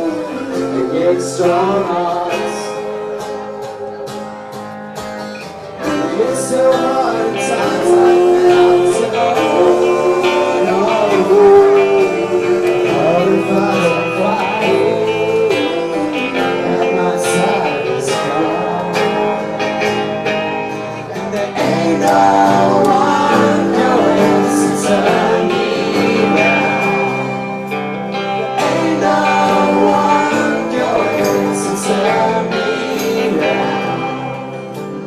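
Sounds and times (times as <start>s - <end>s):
man singing: 0.0s - 4.2s, 5.8s - 35.0s
strummed acoustic guitars: 0.0s - 35.0s.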